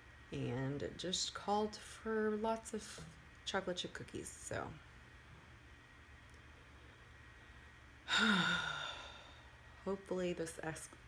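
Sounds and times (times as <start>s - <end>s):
woman sighing: 8.1s - 9.5s.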